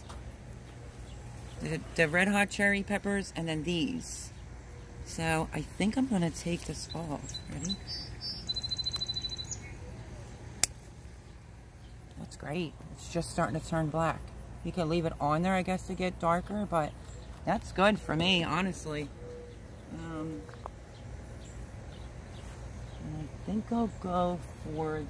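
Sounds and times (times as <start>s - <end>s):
faint bird chirps: 6.9s - 10.1s
garden snippers snipping stem: 10.5s - 11.0s.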